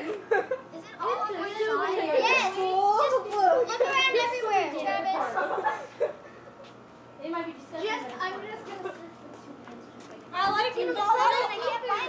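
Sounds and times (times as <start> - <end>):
children calling out excitedly: 0.8 - 5.4, 10.4 - 12.0.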